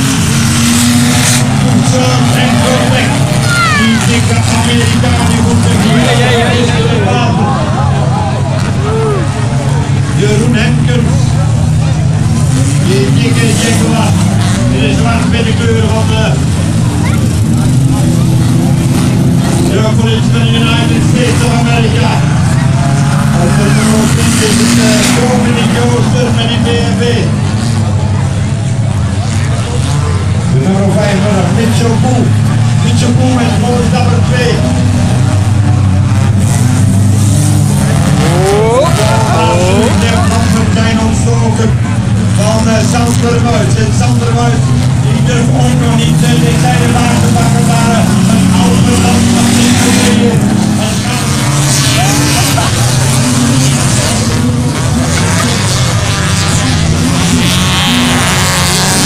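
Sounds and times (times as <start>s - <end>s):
car engines running: 0.0s - 59.0s
announcer over public address: 1.2s - 9.3s, 12.6s - 27.4s, 38.1s - 59.0s.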